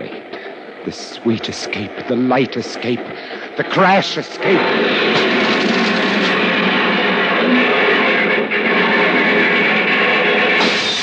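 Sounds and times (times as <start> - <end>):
crash sound effects: 4.4 - 11.0.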